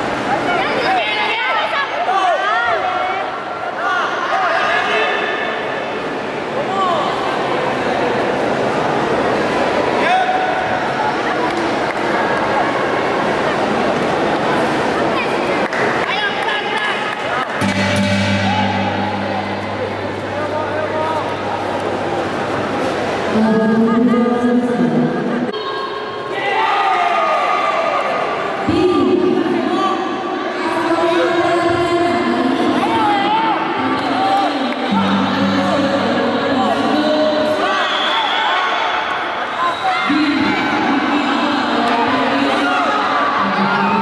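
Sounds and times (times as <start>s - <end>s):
voices shouting in sports hall: 0.2s - 7.6s, 25.4s - 44.0s
steady low hum: 17.6s - 23.7s.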